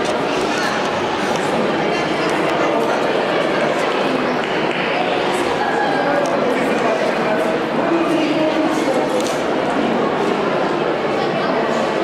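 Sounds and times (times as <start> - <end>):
echoing hubbub of voices: 0.0 - 12.0.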